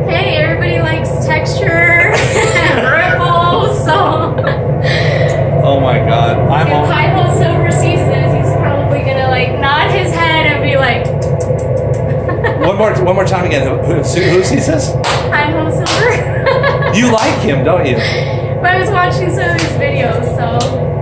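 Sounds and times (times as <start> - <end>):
voices talking: 0.0 - 20.9
steady low hum: 0.0 - 21.0.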